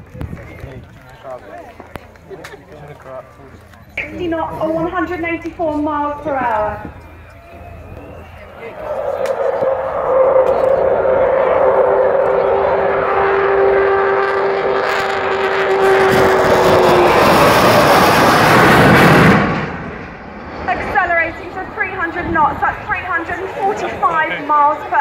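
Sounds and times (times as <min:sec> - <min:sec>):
jet bomber howl and roar: 0:04.0 - 0:25.0.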